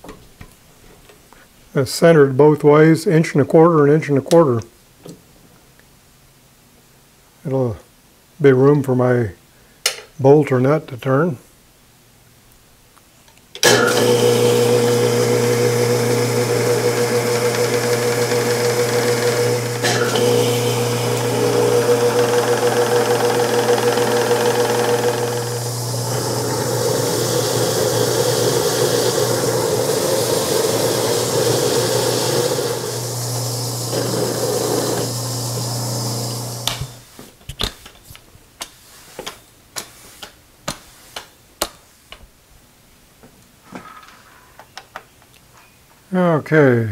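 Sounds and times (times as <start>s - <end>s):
milling machine cutting steel: 13.6s - 37.0s.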